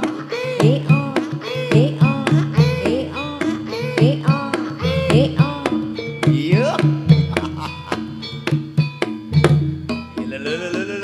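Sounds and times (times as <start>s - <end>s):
drum strokes: 0.0s - 11.0s
ringing metal percussion notes: 0.0s - 11.0s
sharp percussion hits: 0.0s - 11.0s.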